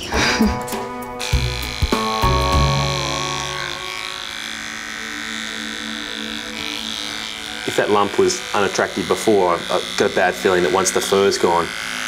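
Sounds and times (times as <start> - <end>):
background music: 0.0 - 12.0
electric hair clippers buzzing: 0.8 - 12.0.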